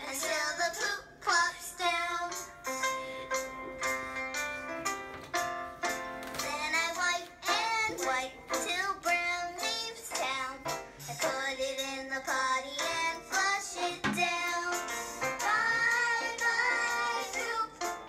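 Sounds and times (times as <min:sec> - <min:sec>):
child singing: 0:00.0 - 0:02.5, 0:06.4 - 0:18.0.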